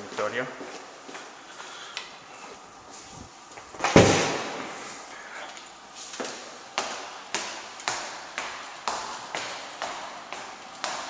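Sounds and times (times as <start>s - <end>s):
loud thump: 3.8s - 4.8s
footsteps climbing stairs: 5.5s - 11.0s.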